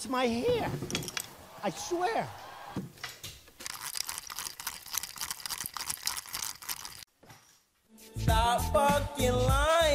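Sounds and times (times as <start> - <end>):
fishing reel clicking: 3.6 - 7.0.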